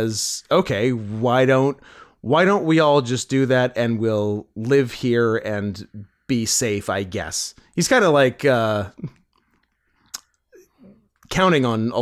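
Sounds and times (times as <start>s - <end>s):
faint mouth and breath sounds: 9.0s - 11.3s
mouth click: 9.0s - 11.3s.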